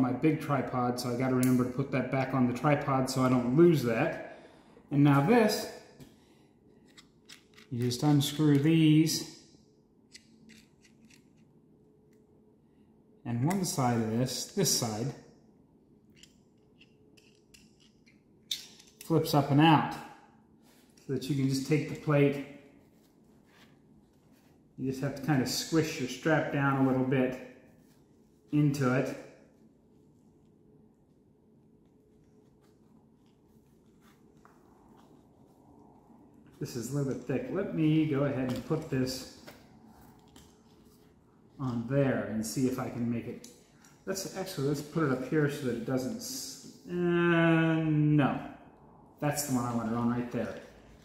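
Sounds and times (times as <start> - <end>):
small clicks of bolts unscrewing: 6.8 - 7.9, 10.1 - 11.4, 16.1 - 19.1.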